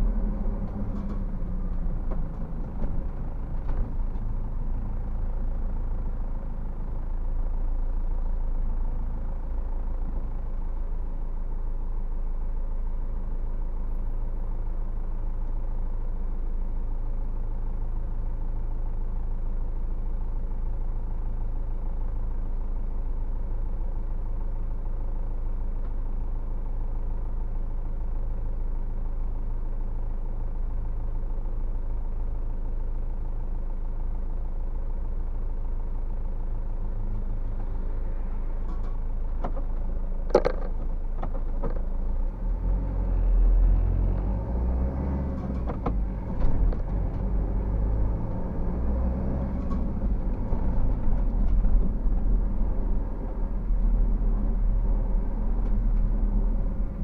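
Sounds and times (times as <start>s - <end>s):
vehicle engine idling: 0.0s - 57.0s.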